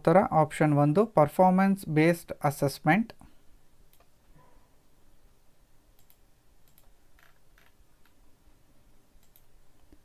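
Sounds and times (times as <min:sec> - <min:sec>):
faint sharp clicks: 0:03.9 - 0:04.1, 0:06.0 - 0:07.0, 0:09.2 - 0:10.0.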